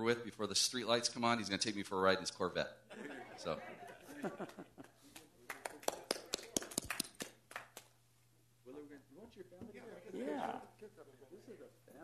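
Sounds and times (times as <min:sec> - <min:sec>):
people clapping: 0:04.3 - 0:08.0.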